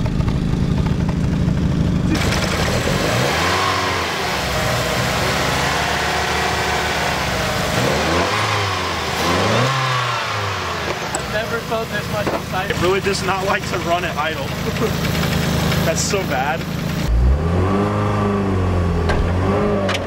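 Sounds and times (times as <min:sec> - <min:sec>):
car engine idling and revving: 0:00.0 - 0:20.0.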